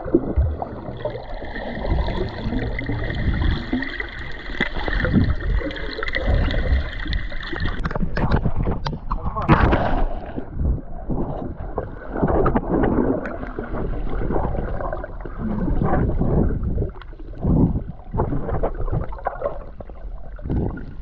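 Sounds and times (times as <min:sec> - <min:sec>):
muffled underwater water sloshing: 0:00.0 - 0:21.0.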